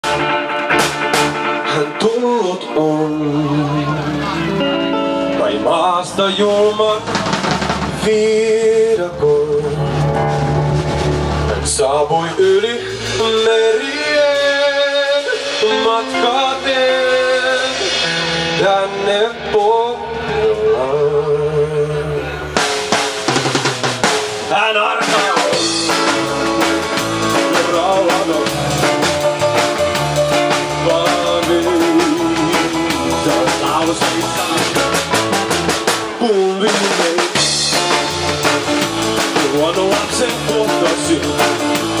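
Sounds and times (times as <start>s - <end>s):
drums: 0.0s - 42.0s
second guitar: 0.0s - 42.0s
man singing: 1.4s - 10.2s, 11.5s - 22.6s, 24.4s - 42.0s.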